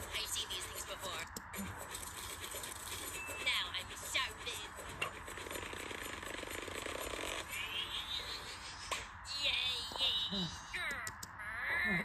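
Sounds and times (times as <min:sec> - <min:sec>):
fast buzzing rattle: 0:04.8 - 0:07.6.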